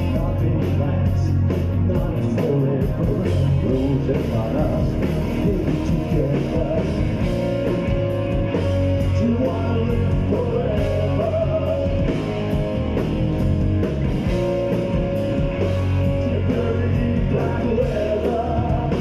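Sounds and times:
rock band playing live: 0.0 - 19.0.

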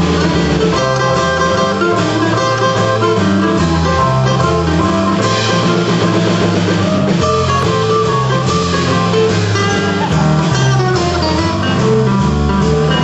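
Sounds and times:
bass line: 0.0 - 13.0
drum kit: 0.0 - 13.0
held keyboard notes: 0.0 - 13.0
strummed guitar: 0.0 - 13.0.

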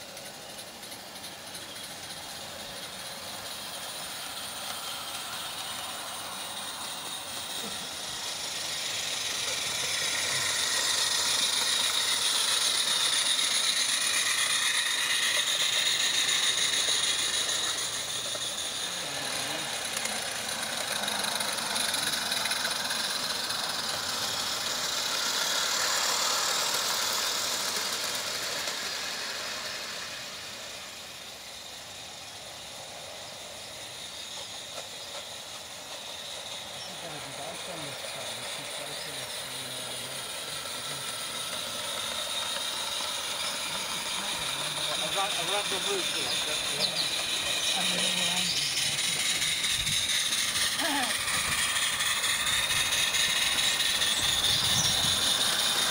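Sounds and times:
model train wheels rattling: 0.0 - 55.9.

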